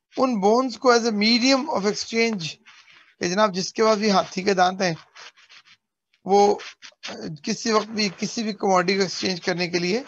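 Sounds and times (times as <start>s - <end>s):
faint scratching sounds: 0.0s - 10.0s.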